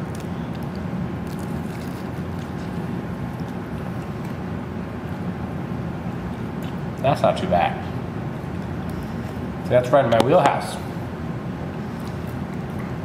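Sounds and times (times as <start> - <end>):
low ventilation rumble: 0.0 - 13.0.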